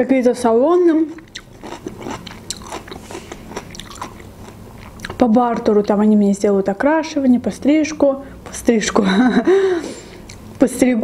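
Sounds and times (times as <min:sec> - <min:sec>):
person chewing food: 0:01.1 - 0:05.2, 0:10.2 - 0:10.4.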